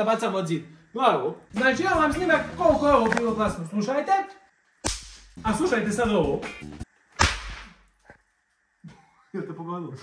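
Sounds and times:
snap pop cracking: 4.8 - 5.4, 7.1 - 7.9.

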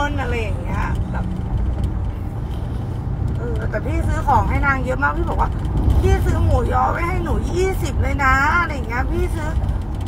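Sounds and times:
woman speaking: 0.0 - 1.4, 3.4 - 9.7
steady low rumble: 0.0 - 10.0.

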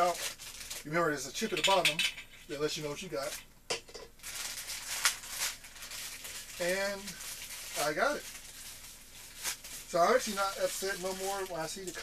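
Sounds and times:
plastic wrapping crinkling: 0.0 - 3.5, 4.2 - 12.0.

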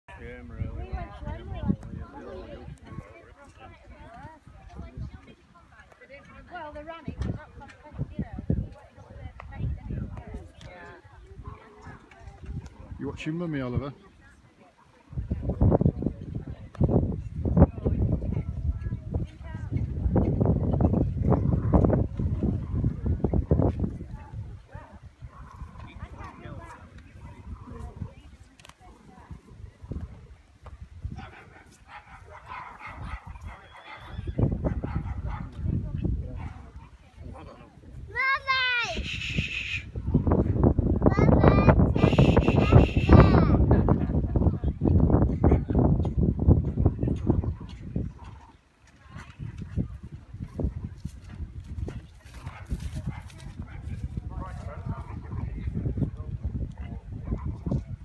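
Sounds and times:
faint voices: 0.1 - 58.0
wind rumble on microphone: 0.1 - 58.0
horse hoofbeats on grass: 47.7 - 55.1.

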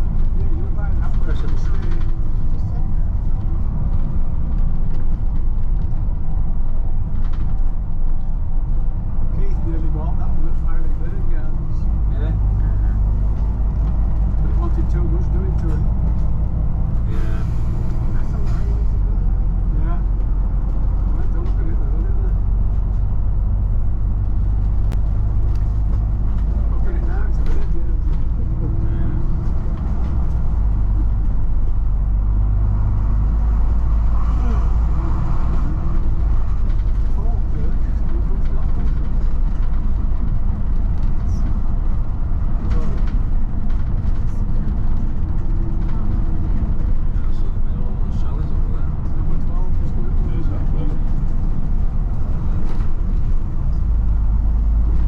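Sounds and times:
bus engine drone: 0.0 - 55.0
road and tyre noise: 0.0 - 55.0.

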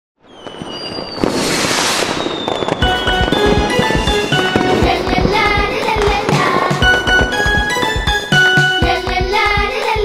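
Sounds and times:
firework whistle: 0.2 - 8.8
fizzing hiss of sparks: 1.2 - 2.4
music with a steady beat: 2.8 - 10.0.

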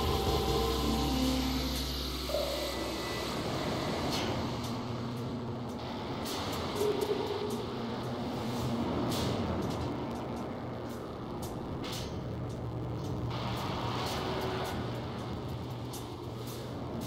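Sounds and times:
low synth drone: 0.0 - 9.2
rushing hissing noise texture: 0.0 - 17.0.

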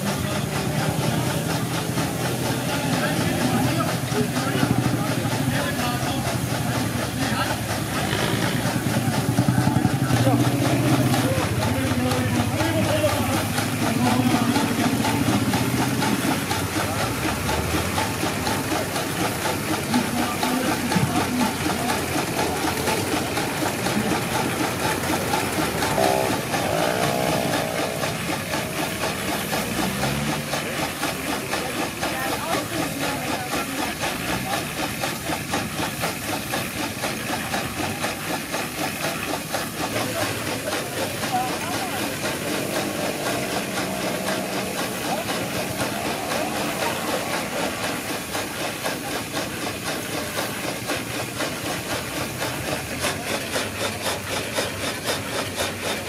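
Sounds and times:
steam engine exhaust puffs: 0.0 - 56.0
steam hissing: 0.0 - 56.0.

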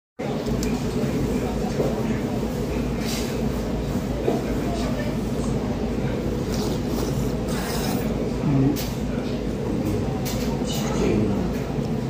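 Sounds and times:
man slurping soup: 6.4 - 8.8.

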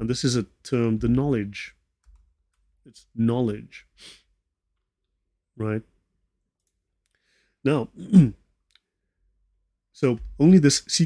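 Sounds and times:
man speaking: 0.0 - 1.8, 2.9 - 4.0, 5.6 - 6.0, 7.6 - 8.4, 10.0 - 11.0.

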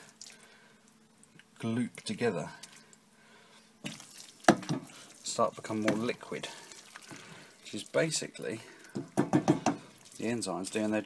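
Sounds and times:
spoon stirring wet mash: 1.2 - 3.0, 3.8 - 11.0.

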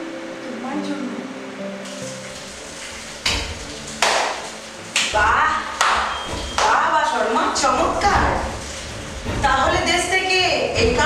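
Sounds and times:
music with long held notes: 0.0 - 11.0
slow hand claps: 3.2 - 5.2, 5.8 - 6.8.

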